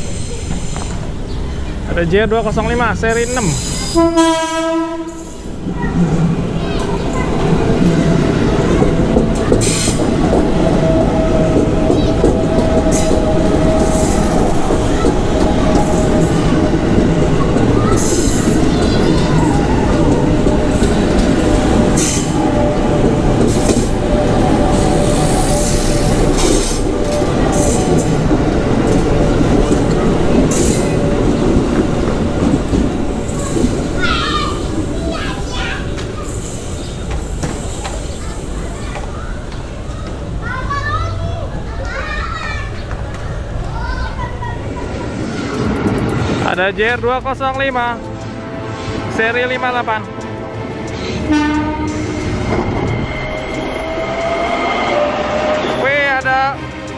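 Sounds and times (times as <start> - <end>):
steady train whine: 0.0 - 56.9
train wheels rumbling on rail: 0.0 - 56.9
train horn: 3.9 - 5.3, 50.2 - 52.4.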